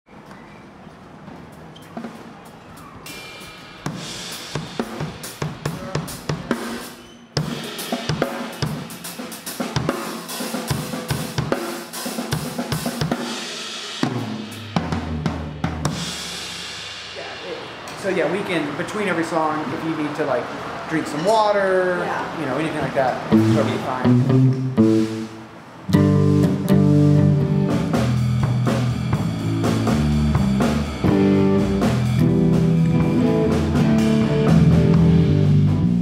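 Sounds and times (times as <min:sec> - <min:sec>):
drum kit playing: 0:01.5 - 0:19.2, 0:22.8 - 0:36.0
band playing: 0:03.4 - 0:36.0.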